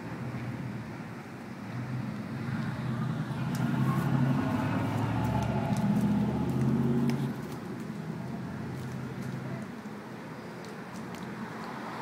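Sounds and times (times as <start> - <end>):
vehicle engine running: 3.2 - 9.2
faint clicks: 10.6 - 11.8.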